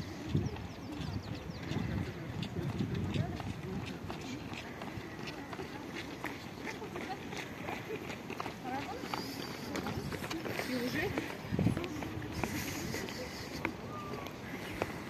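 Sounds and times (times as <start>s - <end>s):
jogging footsteps on asphalt: 0.0s - 15.0s
people talking: 0.0s - 15.0s.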